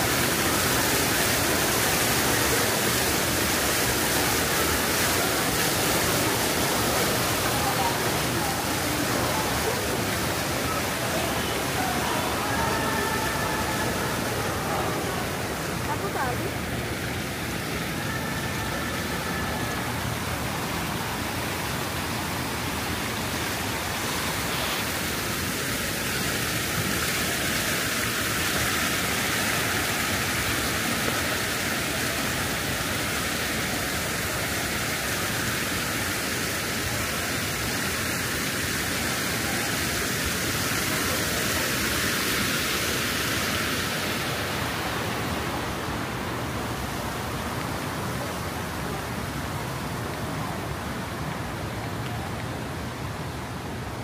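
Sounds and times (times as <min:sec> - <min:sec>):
fountain water splashing: 0:00.0 - 0:54.0.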